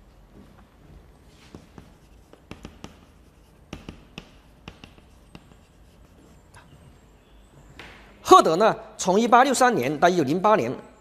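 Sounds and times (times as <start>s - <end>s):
chalk tapping on blackboard: 1.4s - 6.5s.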